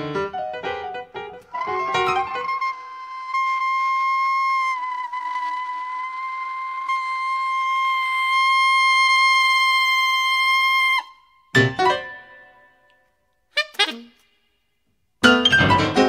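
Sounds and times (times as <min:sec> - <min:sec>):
reed instrument long high note: 0:01.5 - 0:11.2
short notes: 0:11.6 - 0:14.6.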